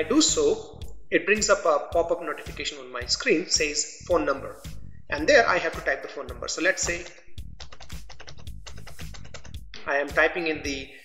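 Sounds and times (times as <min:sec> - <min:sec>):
keyboard keys clicking: 0:06.8 - 0:09.5.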